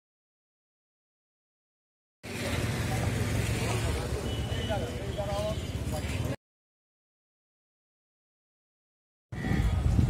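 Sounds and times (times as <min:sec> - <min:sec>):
street low rumble: 0:02.2 - 0:06.4, 0:09.3 - 0:10.0.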